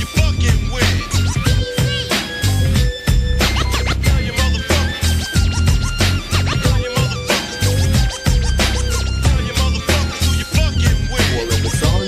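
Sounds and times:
heavy bass and drums: 0.0 - 12.0
turntable scratching: 0.0 - 12.0.

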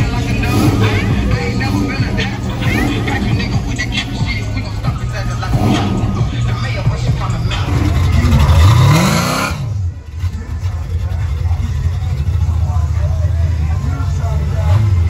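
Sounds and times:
car engine revving: 0.0 - 15.0
crowd voices: 0.0 - 15.0
music: 0.0 - 15.0.

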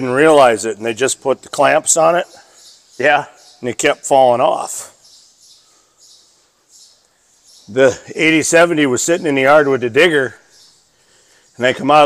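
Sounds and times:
low room hiss: 0.0 - 12.0
small birds chirping: 0.0 - 12.0.

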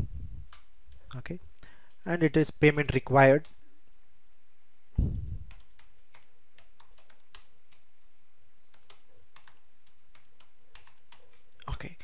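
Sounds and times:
keyboard typing: 0.4 - 1.1, 5.4 - 8.1, 8.7 - 11.4.

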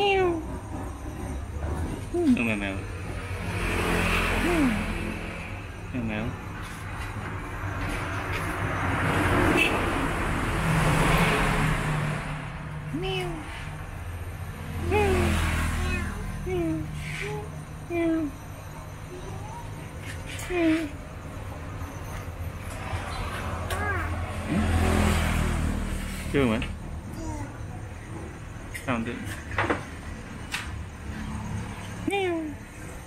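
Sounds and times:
vehicles passing: 0.0 - 33.0
engine revving: 3.0 - 6.4, 8.6 - 13.8, 14.4 - 17.3, 22.6 - 27.2.

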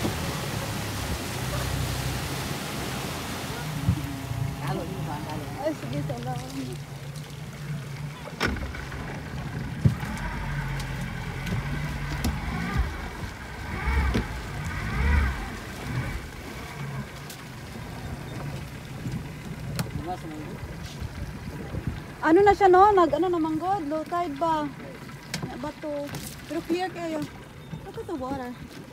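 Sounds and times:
outboard motor humming: 0.0 - 28.9
water noise: 0.0 - 28.9
wind: 0.0 - 28.9.

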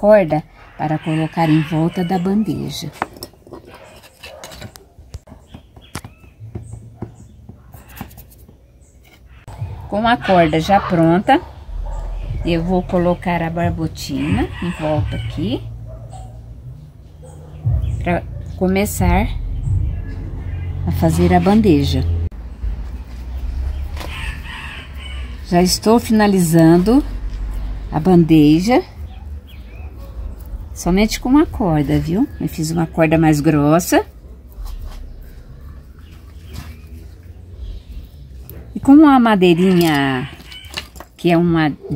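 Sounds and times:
rooster crowing: 0.6 - 2.7, 14.1 - 15.6, 24.0 - 25.5, 39.4 - 40.9
steady low hum: 9.4 - 24.4.

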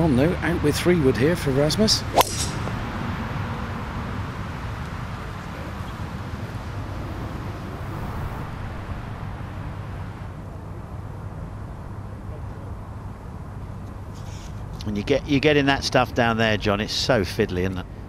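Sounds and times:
steady outdoor background rush: 0.0 - 18.0.

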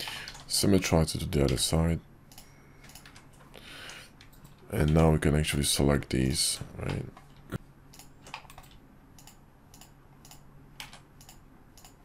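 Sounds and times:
keyboard and mouse clicking: 7.9 - 12.0.

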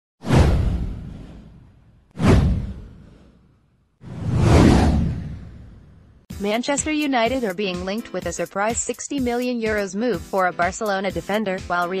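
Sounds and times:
whoosh with deep low boom: 0.2 - 6.3.

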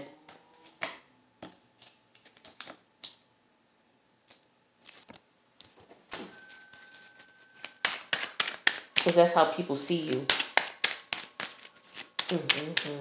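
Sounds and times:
cards clicking on glass table: 0.6 - 3.2, 7.6 - 9.4, 10.0 - 13.0.

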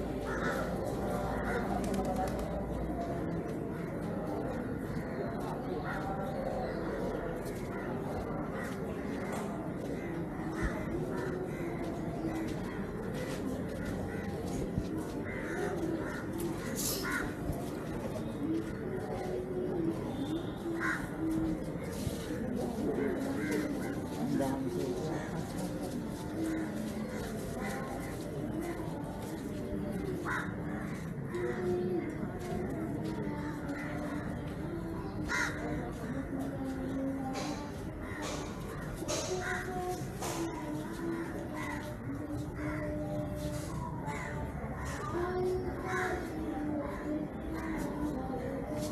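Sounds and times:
background murmur: 0.0 - 48.9
crows cawing: 0.2 - 0.8, 15.2 - 17.4, 30.2 - 30.9, 35.3 - 35.8
crow cawing: 35.3 - 35.7.

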